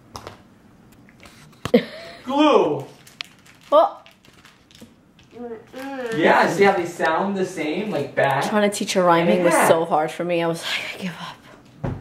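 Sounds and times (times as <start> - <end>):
girl speaking: 5.3 - 6.5, 9.3 - 9.8.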